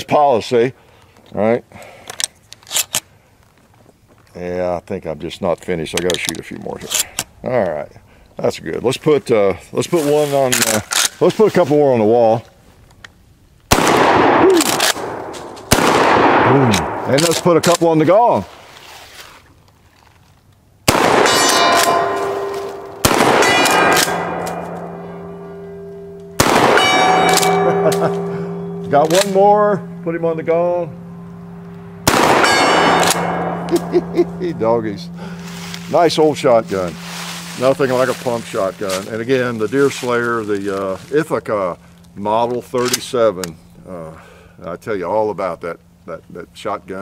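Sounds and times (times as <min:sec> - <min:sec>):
metallic clicks and scrapes: 0:02.0 - 0:03.1
shotgun shots: 0:13.7 - 0:17.9, 0:20.9 - 0:25.0, 0:26.4 - 0:29.4, 0:32.0 - 0:33.9
steel gong ringing: 0:21.1 - 0:42.4.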